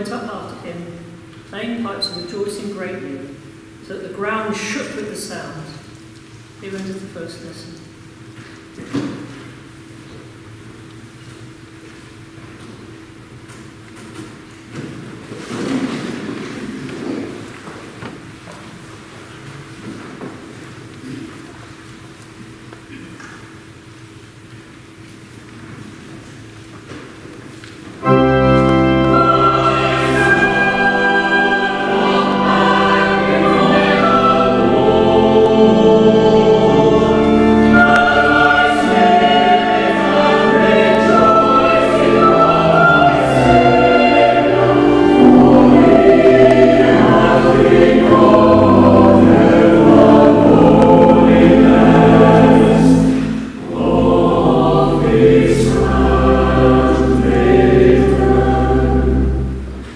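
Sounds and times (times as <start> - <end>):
church choir singing: 28.0 - 59.9
organ accompaniment: 28.0 - 59.9.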